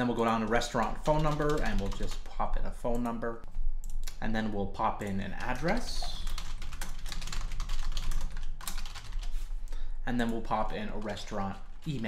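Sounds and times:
low steady hum: 0.0s - 12.0s
fast typing on a keyboard: 0.3s - 3.2s, 5.0s - 9.3s, 10.1s - 12.0s.

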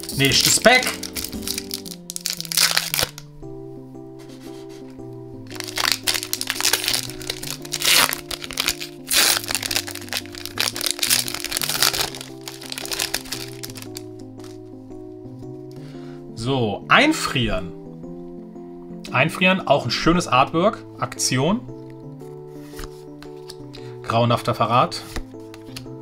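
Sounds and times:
foil wrapper crinkling and tearing: 0.0s - 3.3s, 5.5s - 14.6s
background music: 0.0s - 26.0s.

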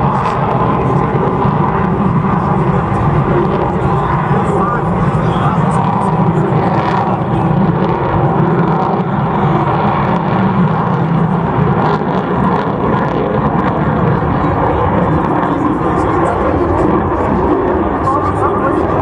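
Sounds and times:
jet engine roaring overhead: 0.0s - 19.0s.

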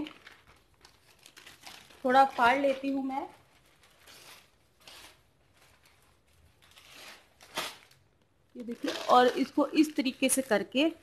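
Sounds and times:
newspaper crinkling and rustling: 0.0s - 10.9s.

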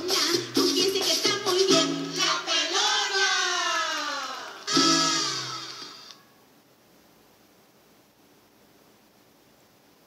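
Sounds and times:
music: 0.0s - 3.6s, 4.2s - 6.2s
low steady hiss: 0.0s - 10.0s.

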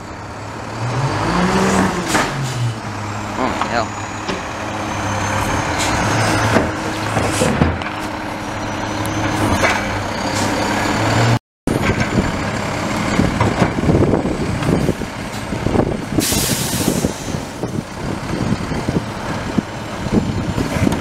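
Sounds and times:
diesel truck engine running: 0.0s - 21.0s
loud air hiss: 16.2s - 17.4s.

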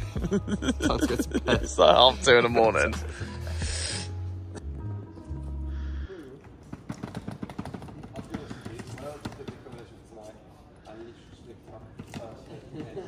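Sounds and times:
loud low music: 0.0s - 6.1s.

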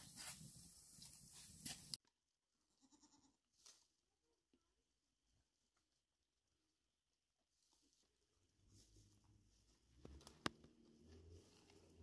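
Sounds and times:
faint goat bleats: 2.7s - 3.5s.

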